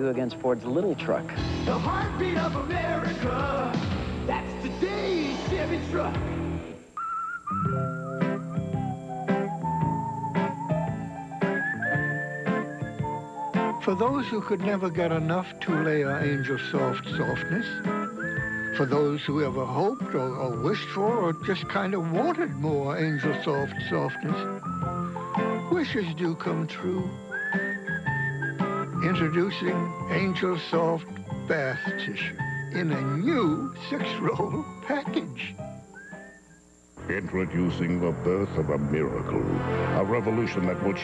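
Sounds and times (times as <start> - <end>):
soft background music: 0.0 - 41.0
whistled jingle melody: 7.0 - 36.6.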